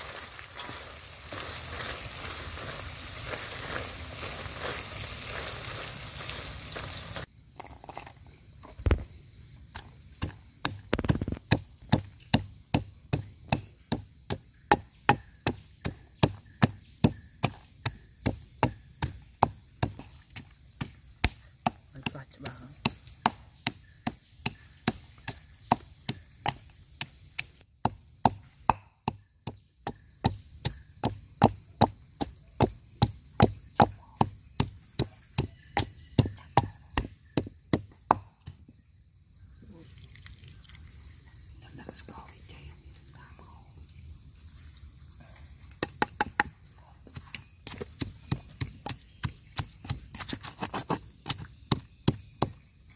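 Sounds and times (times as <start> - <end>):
crickets chirring: 0.0 - 52.9
pestle pounding in a mortar: 9.8 - 26.6, 27.8 - 38.6, 45.8 - 46.5, 47.1 - 52.6.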